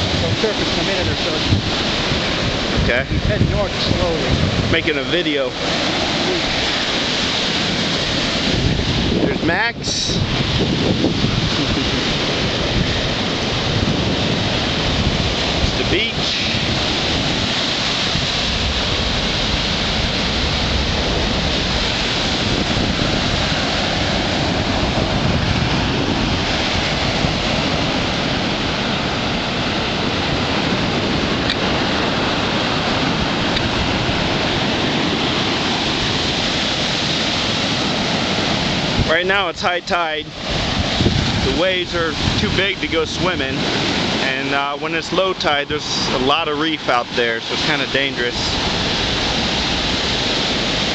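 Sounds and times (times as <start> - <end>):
surf breaking on beach: 0.0 - 50.9
wind buffeting microphone: 0.0 - 50.9.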